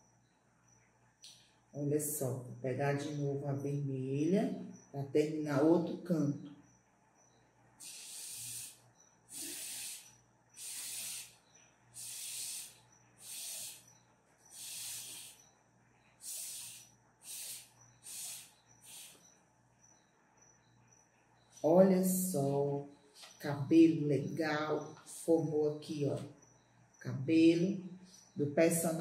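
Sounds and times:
breath blown through a straw: 0:07.8 - 0:11.4, 0:12.0 - 0:13.9, 0:14.5 - 0:15.4, 0:16.2 - 0:19.2.

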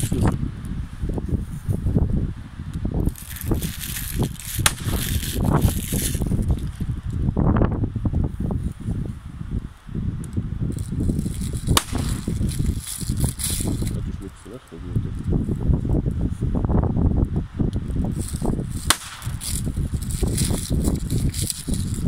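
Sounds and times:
handling rustling: 0:00.0 - 0:00.4, 0:03.0 - 0:06.9, 0:10.7 - 0:14.1, 0:18.1 - 0:22.0
wind rumbling on microphone: 0:00.0 - 0:22.0.

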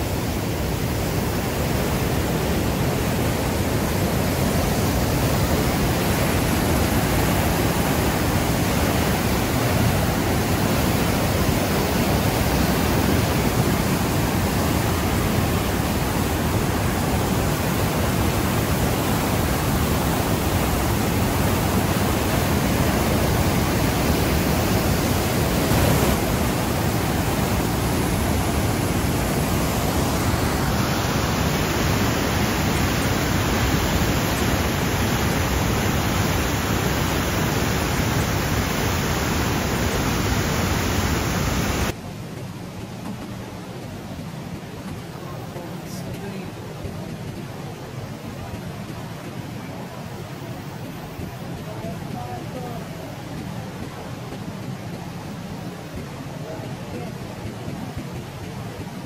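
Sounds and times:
waterfall rushing: 0:00.0 - 0:42.0.

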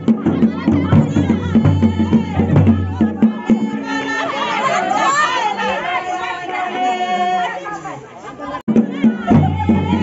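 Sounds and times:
women talking and calling out: 0:00.0 - 0:10.0.

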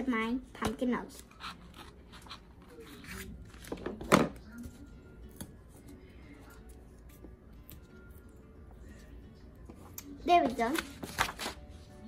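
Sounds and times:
faint music: 0:00.0 - 0:12.0
scissors cutting paper: 0:01.2 - 0:03.7.

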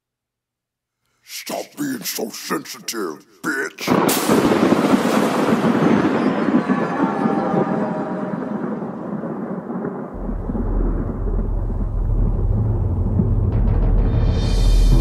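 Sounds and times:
thunder rumble: 0:03.9 - 0:15.0
deep low drone: 0:10.2 - 0:15.0.

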